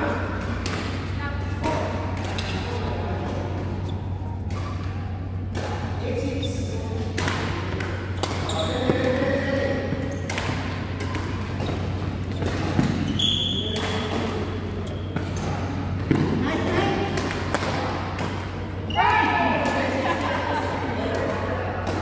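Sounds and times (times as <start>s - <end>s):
steady low hum: 0.0s - 22.0s
rackets hitting shuttlecock: 0.1s - 22.0s.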